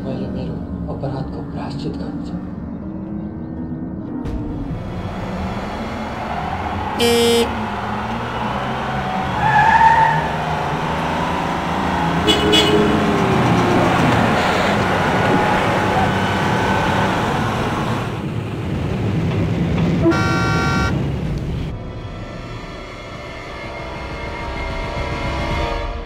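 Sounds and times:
vehicle engines running: 0.0 - 21.8
car horn honking: 7.0 - 7.6, 12.2 - 13.2, 20.0 - 21.0.

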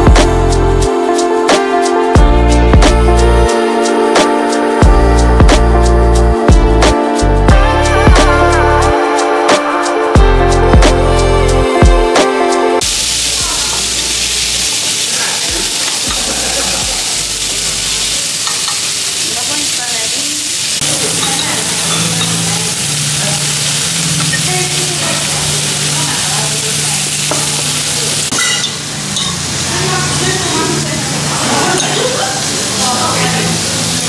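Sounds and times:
meat sizzling on a griddle: 12.8 - 34.0.

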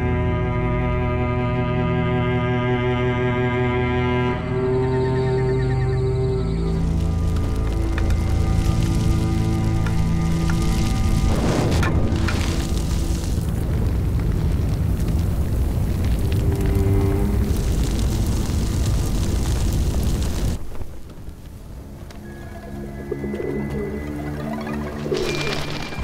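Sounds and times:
dramatic film score: 0.0 - 19.5, 20.5 - 26.0
fire burning through wooden building: 6.2 - 26.0.

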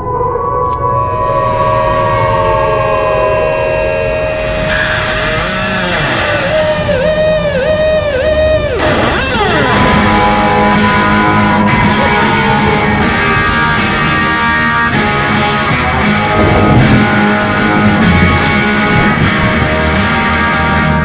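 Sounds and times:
electric guitar droning notes: 0.0 - 21.0
low rumble: 0.0 - 21.0.

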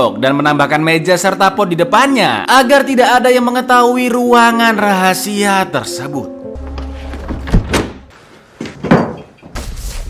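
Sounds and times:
sliding door thud: 6.8 - 9.0
sliding door bang: 7.1 - 9.8.

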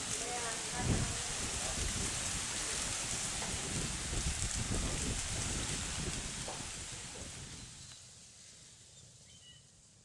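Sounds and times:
steady hiss: 0.0 - 10.0
wind buffeting microphone: 0.5 - 7.9.

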